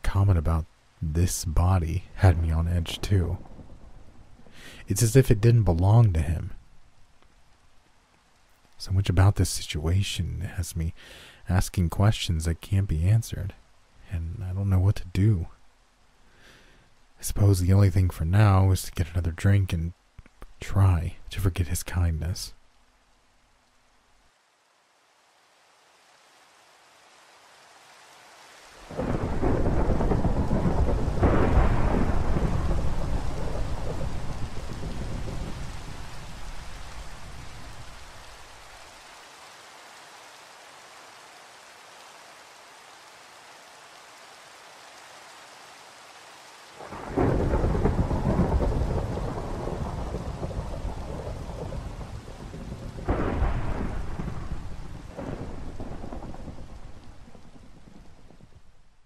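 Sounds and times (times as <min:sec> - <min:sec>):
steady rain: 0:00.0 - 0:59.0
thunder cracks: 0:28.9 - 0:37.9, 0:46.8 - 0:58.6
thunder rolling: 0:28.9 - 0:38.0, 0:46.8 - 0:58.7.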